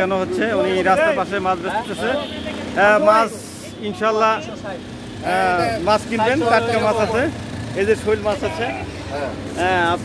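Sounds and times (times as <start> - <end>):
men talking: 0.0 - 10.0
street traffic: 0.0 - 10.0.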